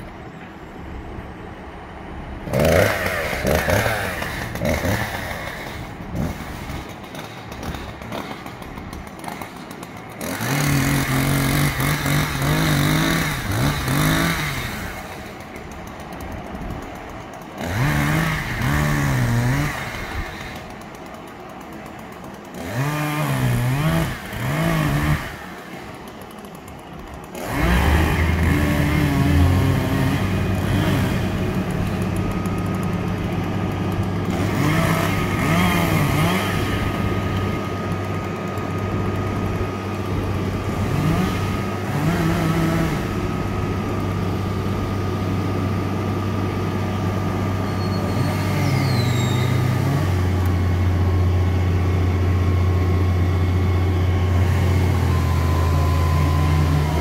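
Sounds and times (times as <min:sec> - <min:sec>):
truck engine running: 0:00.0 - 0:57.0
chainsaw revving: 0:02.4 - 0:57.0.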